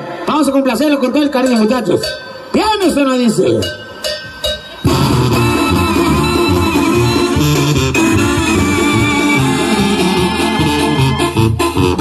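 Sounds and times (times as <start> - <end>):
drums: 1.9 - 12.0
brass band playing: 4.7 - 12.0
tuba: 4.9 - 12.0.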